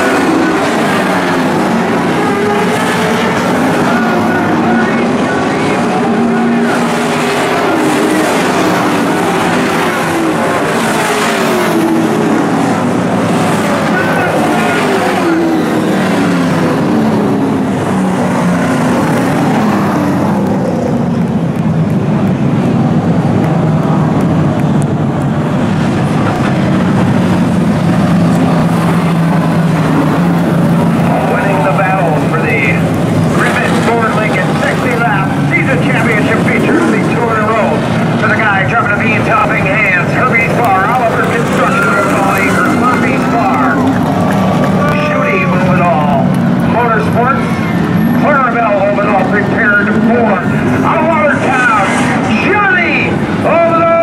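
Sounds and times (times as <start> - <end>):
people's voices: 0.0 - 22.0, 22.7 - 54.0
race car engines running: 0.0 - 54.0.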